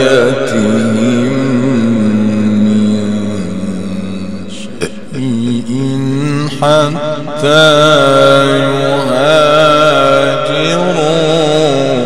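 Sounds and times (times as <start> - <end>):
man reciting through loudspeaker: 0.0 - 12.0.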